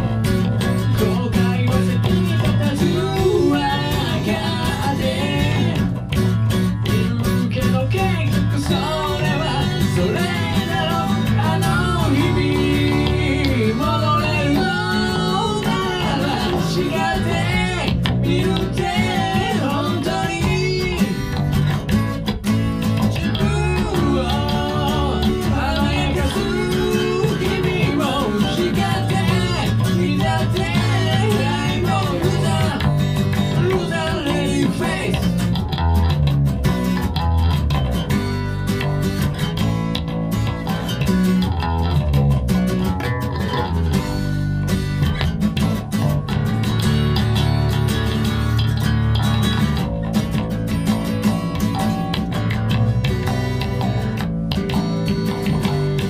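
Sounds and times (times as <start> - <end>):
man singing: 0.0 - 6.2, 6.8 - 21.6, 23.0 - 35.7
electric bass: 0.0 - 56.0
strummed acoustic guitar: 0.0 - 56.0.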